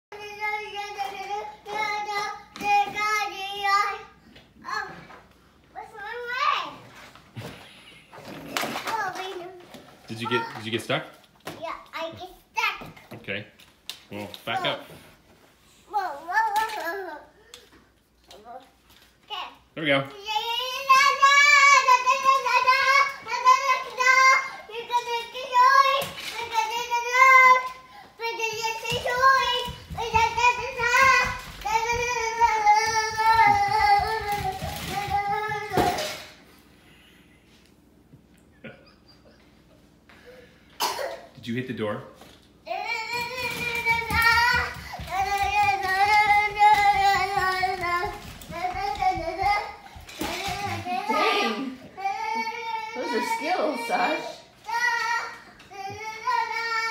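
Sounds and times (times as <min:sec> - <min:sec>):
toddler's wordless voice: 0:42.7 - 0:56.9.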